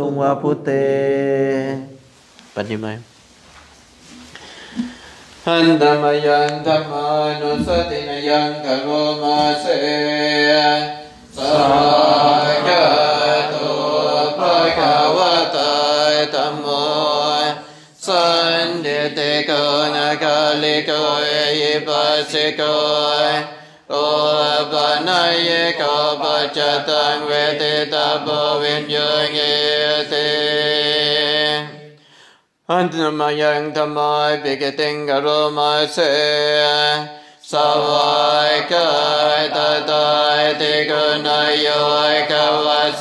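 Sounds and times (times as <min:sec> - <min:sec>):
person chanting verses: 0:00.0 - 0:02.0, 0:04.8 - 0:32.0, 0:32.7 - 0:43.0.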